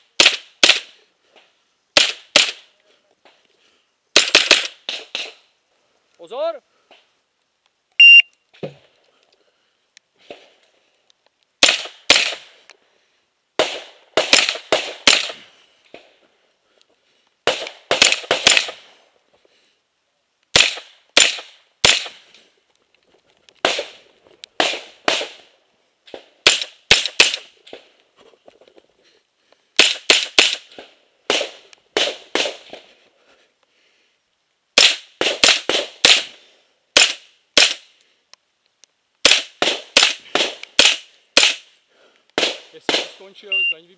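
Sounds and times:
carbine gunshots: 0.2s - 1.0s, 2.0s - 2.7s, 4.2s - 5.4s, 11.6s - 12.6s, 13.6s - 15.5s, 17.4s - 18.9s, 20.5s - 22.3s, 24.6s - 25.5s, 26.1s - 27.9s, 29.8s - 32.9s, 34.8s - 36.4s, 37.0s - 37.9s, 39.2s - 41.7s, 42.4s - 43.3s
shot timer beep: 8.0s - 8.3s, 43.5s - 43.8s.

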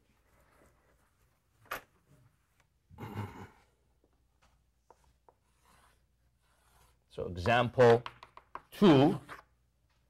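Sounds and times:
chalk scratching on chalkboard: 4.8s - 7.8s
chalk tapping on chalkboard: 4.8s - 8.8s.

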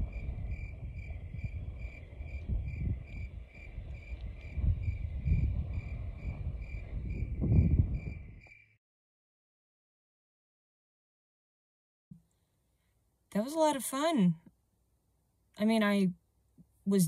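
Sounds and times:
wind rumble on microphone: 0.0s - 8.6s
cricket chirping: 0.0s - 8.8s.

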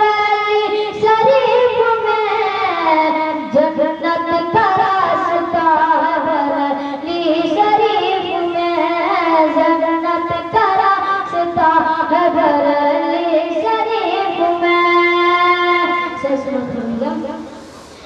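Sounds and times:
boy singing devotional song: 0.0s - 17.7s.

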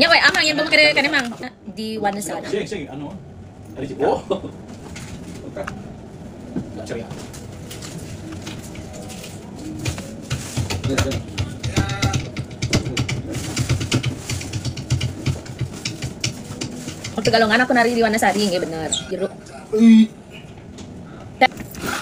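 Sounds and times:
indistinct voices: 5.4s - 22.0s.

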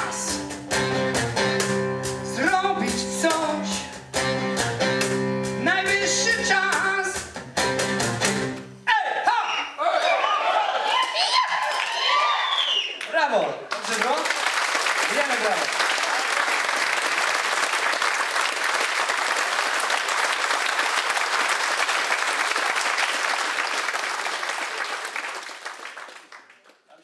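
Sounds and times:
audience applauding: 10.0s - 27.0s.

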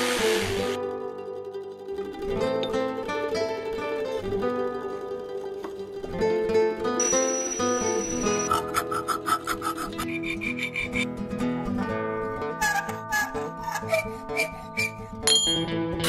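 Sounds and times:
electric drill boring through metal: 0.0s - 0.8s
plucked guitar music: 0.0s - 16.0s
rasping strokes on metal: 8.1s - 11.1s.

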